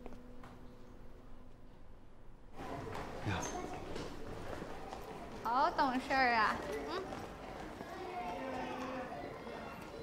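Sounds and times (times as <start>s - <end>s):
faint chatter of children and adults: 2.6s - 10.0s.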